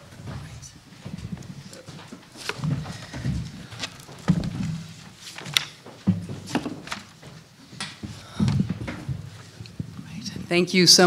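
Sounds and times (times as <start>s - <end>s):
bumps on table microphones: 1.1s - 5.0s, 5.9s - 10.5s
papers shifting: 1.2s - 9.9s.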